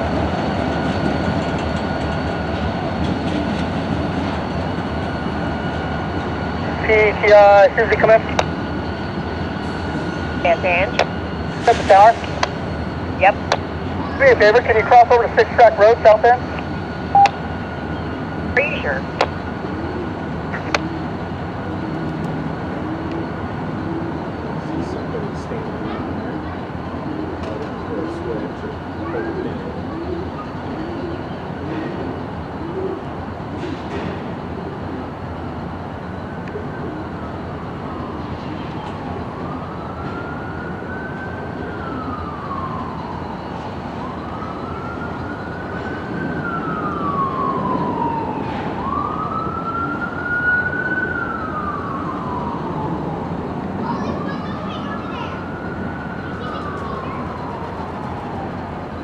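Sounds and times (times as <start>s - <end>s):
idling diesel locomotives rumble: 0.0s - 50.2s
siren wailing: 4.0s - 33.6s, 34.2s - 59.0s.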